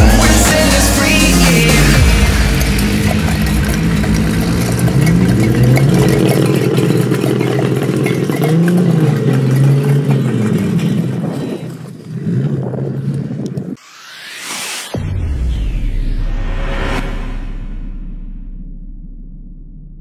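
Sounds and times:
car engine revving: 0:00.0 - 0:13.2.

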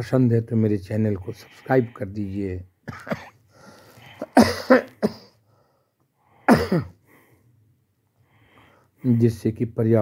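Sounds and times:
man coughing: 0:02.8 - 0:03.4, 0:04.2 - 0:05.4, 0:06.5 - 0:07.0.

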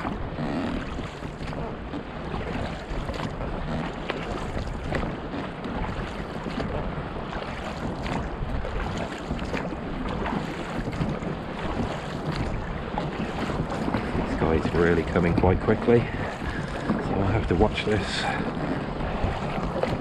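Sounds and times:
water splashing against dinghy: 0:00.0 - 0:20.0
wind rumbling on microphone: 0:00.0 - 0:20.0.

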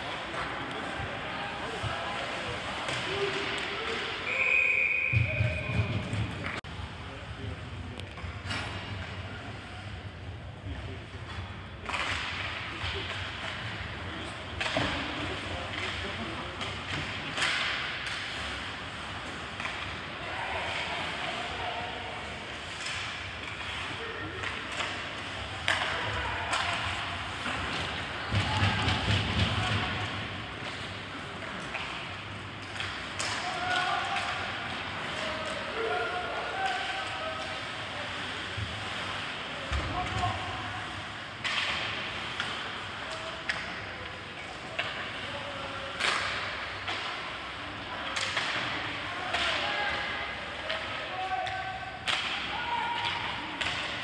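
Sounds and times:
rink background noise: 0:00.0 - 0:54.0
hockey sticks knocking puck: 0:14.5 - 0:21.2, 0:24.4 - 0:37.6, 0:41.4 - 0:45.2, 0:45.9 - 0:49.8.

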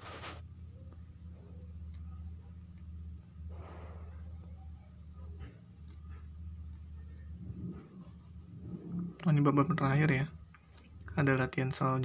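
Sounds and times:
low rumbling hum: 0:00.0 - 0:12.0.

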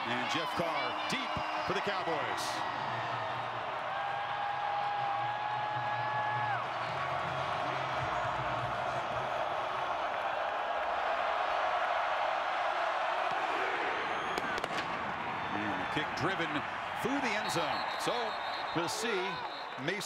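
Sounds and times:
stadium crowd cheering: 0:00.0 - 0:20.0.

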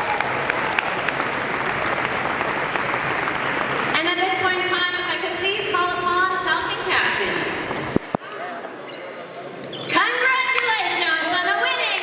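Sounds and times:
woman announcing over a microphone: 0:03.9 - 0:07.6, 0:09.9 - 0:12.0.

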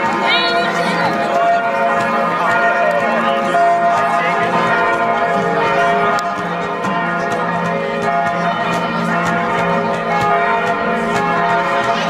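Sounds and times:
bells ringing in a peal: 0:00.0 - 0:12.0.

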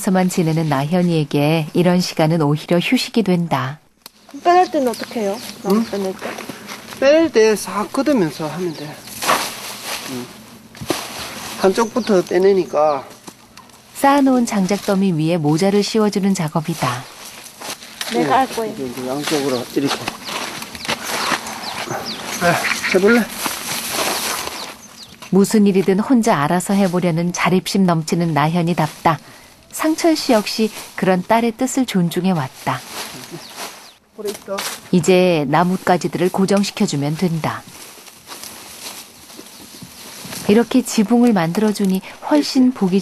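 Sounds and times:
branches rustling and snapping: 0:04.0 - 0:07.1, 0:09.0 - 0:27.5, 0:32.3 - 0:35.0, 0:35.6 - 0:43.0
small crackles: 0:13.1 - 0:27.5, 0:32.6 - 0:35.0, 0:35.8 - 0:43.0.

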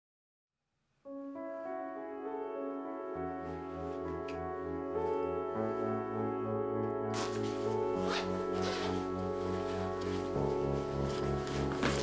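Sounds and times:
background music sustained chords: 0:01.1 - 0:12.0
backpack zipper zip: 0:07.1 - 0:09.2.

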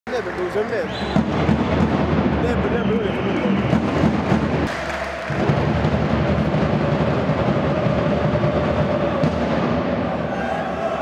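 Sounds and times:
drums beating in steady rhythm: 0:00.1 - 0:11.0
crowd chanting: 0:04.7 - 0:11.0.

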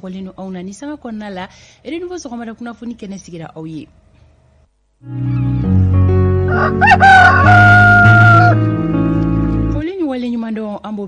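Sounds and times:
music with held notes: 0:05.0 - 0:09.9
rooster crowing: 0:06.4 - 0:08.7.

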